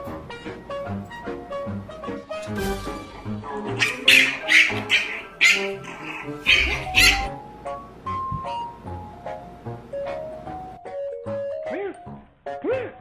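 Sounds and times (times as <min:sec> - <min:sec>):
background music: 0:00.0 - 0:13.0
cat crying loudly: 0:03.8 - 0:07.3.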